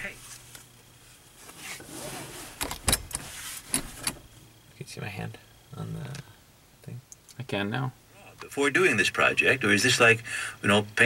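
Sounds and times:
handling knocks and clicks in car: 2.6 - 4.3.

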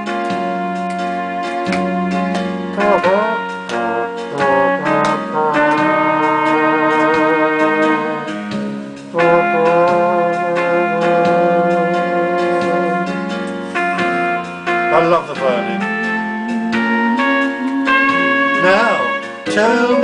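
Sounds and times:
backing track: 0.0 - 20.0
harmonica melody: 0.0 - 20.0.

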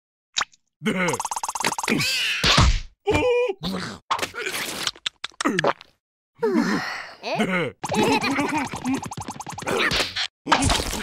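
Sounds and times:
cartoon groans and yelps: 6.4 - 11.0.

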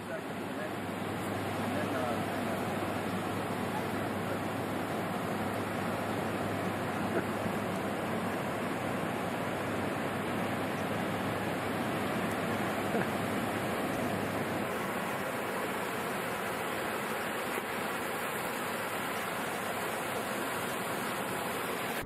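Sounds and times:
ocean surf breaking: 0.0 - 22.0.

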